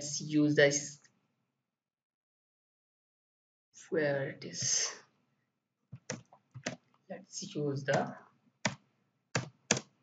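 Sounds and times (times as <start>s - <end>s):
computer keyboard keystrokes: 6.0s - 7.0s, 7.9s - 10.0s.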